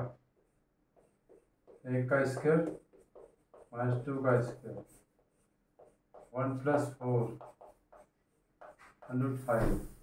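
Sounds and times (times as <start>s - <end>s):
chalk writing on a blackboard: 0.0s - 10.0s
man speaking: 1.8s - 2.8s, 3.7s - 4.9s, 6.3s - 7.4s, 9.1s - 9.9s.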